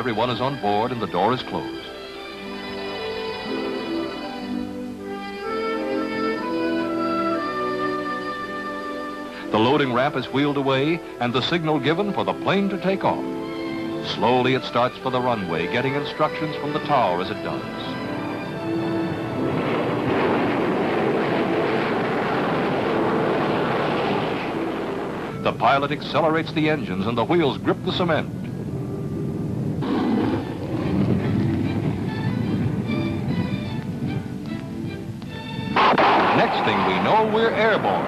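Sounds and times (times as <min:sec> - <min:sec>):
orchestral strings sustained notes: 0:00.0 - 0:24.0, 0:24.6 - 0:38.0
jet engines rushing: 0:00.0 - 0:38.0.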